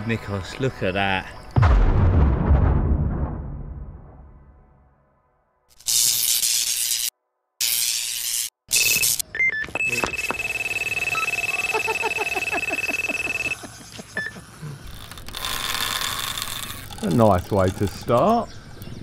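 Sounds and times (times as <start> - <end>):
bite alarm tone and beeps: 8.7 - 13.6, 14.2 - 14.4.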